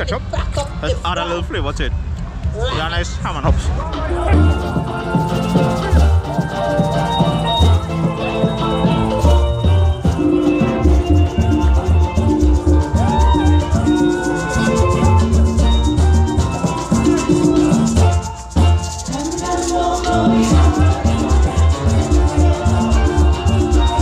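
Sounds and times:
pulsing bass line: 3.6s - 24.0s
strummed cuatro and guitar: 3.9s - 19.2s
maracas shaking: 4.0s - 24.0s.

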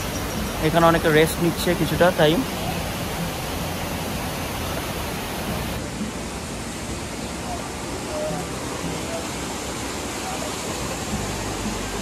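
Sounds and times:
stream rushing over boulders: 0.0s - 12.0s.

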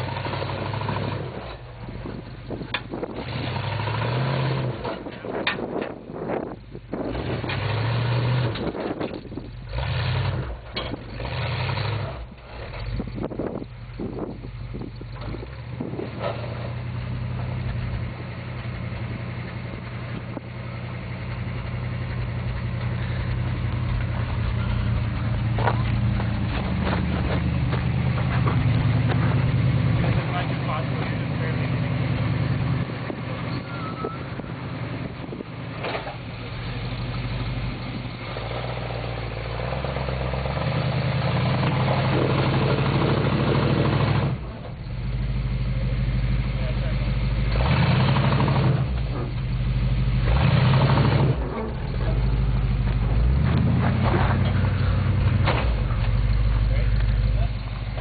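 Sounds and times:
truck engine labouring: 0.0s - 58.0s.

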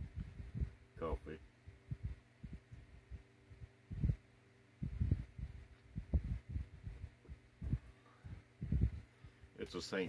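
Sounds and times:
soft low thumps of mug: 0.0s - 0.8s, 1.9s - 3.2s, 3.9s - 4.2s, 4.8s - 9.1s
faint steady hum: 0.0s - 10.0s.

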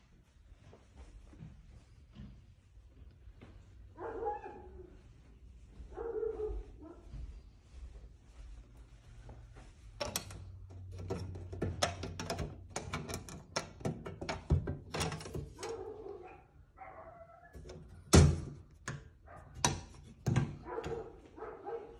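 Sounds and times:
dog barking: 4.0s - 5.0s, 5.9s - 7.1s, 15.6s - 17.6s, 19.2s - 19.6s, 20.5s - 21.9s.

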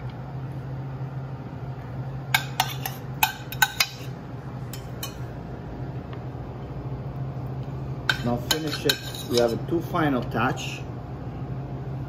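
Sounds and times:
steady low hum: 0.0s - 12.0s
metal utensils clinking on dishes: 8.1s - 9.6s.

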